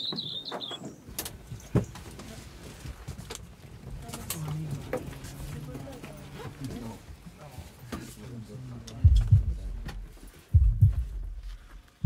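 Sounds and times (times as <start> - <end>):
background chatter of voices: 2.0 - 10.3.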